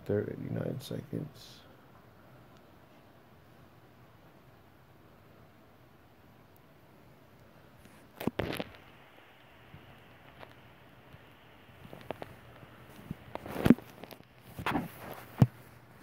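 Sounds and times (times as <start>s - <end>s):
faint low hum: 0.0s - 16.0s
rustles and bumps: 7.8s - 16.0s.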